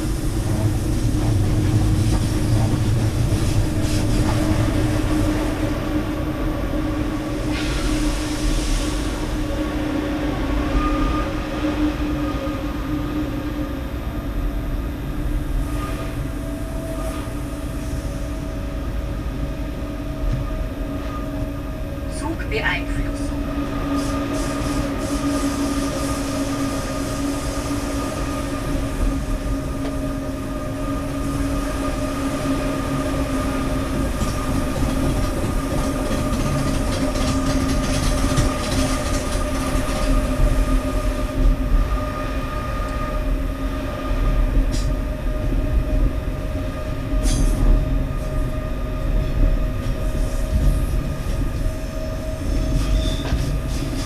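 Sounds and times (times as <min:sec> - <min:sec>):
electric train hum: 0:00.0 - 0:54.0
low rumble of train wheels: 0:00.0 - 0:54.0.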